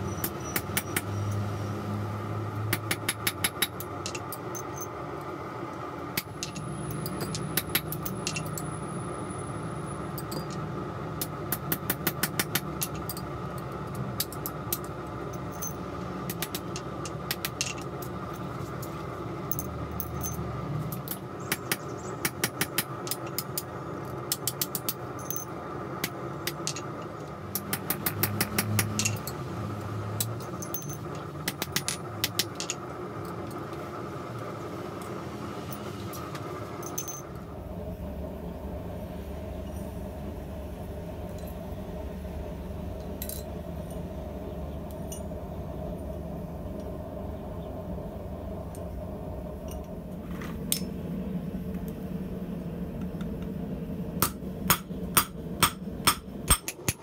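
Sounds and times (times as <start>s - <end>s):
steady workshop hum: 0.0s - 57.0s
hammer striking steel on anvil: 54.2s - 57.0s.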